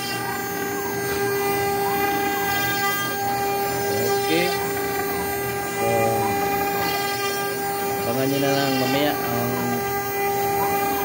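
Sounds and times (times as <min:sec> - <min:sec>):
bit cutting wood: 0:00.0 - 0:11.0
router spindle high whine: 0:00.0 - 0:11.0.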